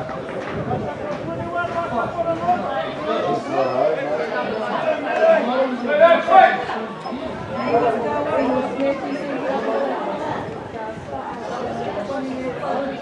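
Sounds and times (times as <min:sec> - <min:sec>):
people talking at once: 0:00.0 - 0:13.0.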